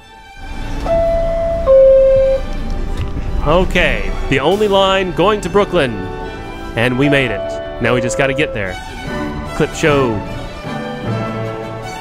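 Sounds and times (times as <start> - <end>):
subway door closing chime: 0.0 - 12.0
train low rumble: 0.0 - 12.0.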